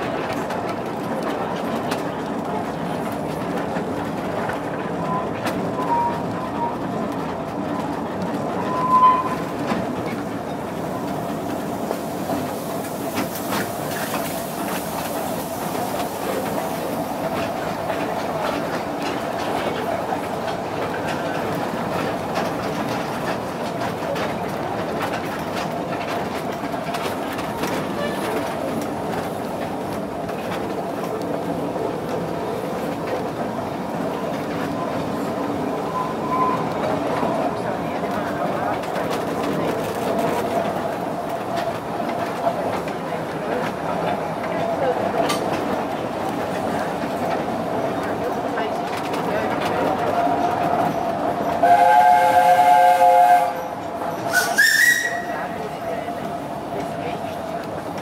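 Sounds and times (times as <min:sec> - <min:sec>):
train wheels rumbling clickety-clack: 0:00.0 - 0:58.0.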